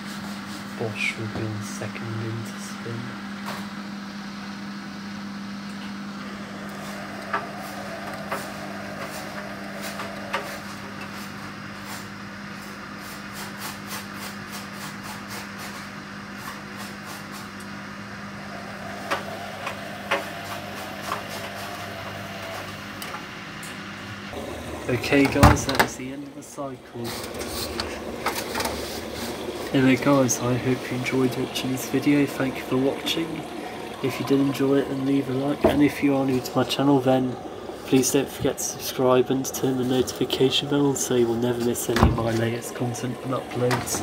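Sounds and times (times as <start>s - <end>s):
washing machine humming: 0.0s - 44.0s.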